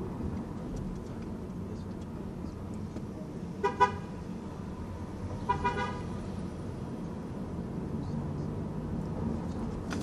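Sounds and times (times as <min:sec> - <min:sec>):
car horn beeping: 0:03.6 - 0:04.2, 0:05.4 - 0:06.2.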